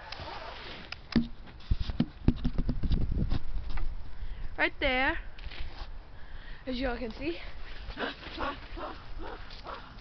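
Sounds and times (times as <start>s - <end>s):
camera handling rustling hiss: 5.4s - 6.0s.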